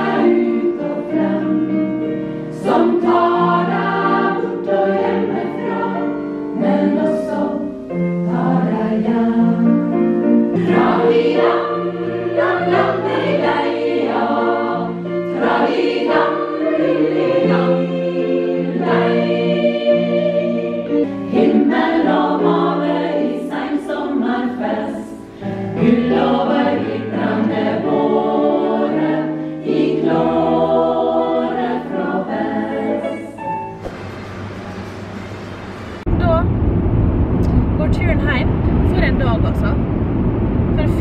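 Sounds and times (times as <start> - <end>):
women's choir singing: 0.0 - 33.8.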